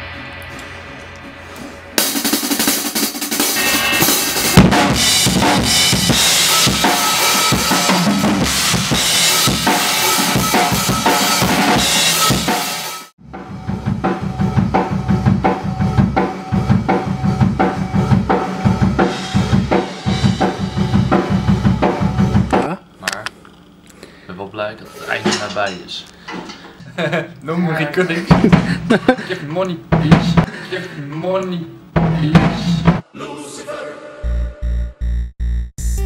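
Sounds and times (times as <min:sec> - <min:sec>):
cymbal crashes: 0:00.0 - 0:22.4
drum kit rock pattern: 0:00.0 - 0:22.9, 0:28.2 - 0:30.7, 0:31.4 - 0:33.0.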